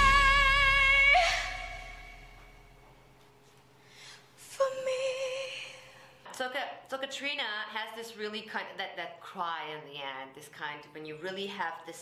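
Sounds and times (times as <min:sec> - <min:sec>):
woman singing high held note: 0:00.0 - 0:02.6.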